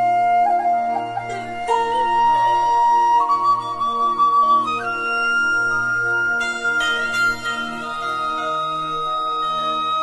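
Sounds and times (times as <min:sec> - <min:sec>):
flute holding long notes: 0:00.0 - 0:10.0
soft sustained accompaniment: 0:00.0 - 0:10.0.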